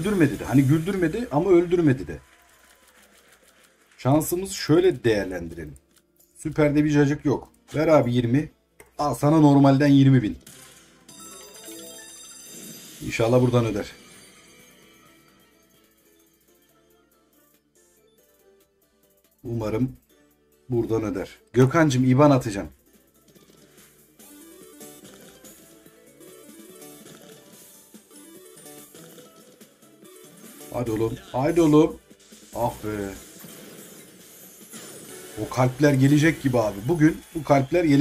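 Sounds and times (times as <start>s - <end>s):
slot game jingle: 0.0s - 2.1s, 10.4s - 16.6s, 30.2s - 38.0s
slot game music: 0.0s - 38.0s.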